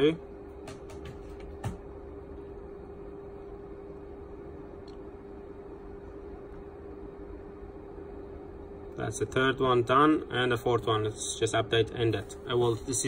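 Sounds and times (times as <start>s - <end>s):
mid-pitched hum: 0.0s - 13.0s.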